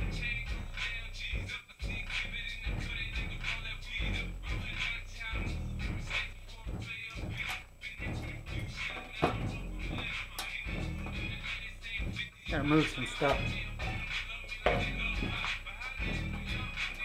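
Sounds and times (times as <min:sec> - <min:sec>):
music with heavy bass beat: 0:00.0 - 0:17.0.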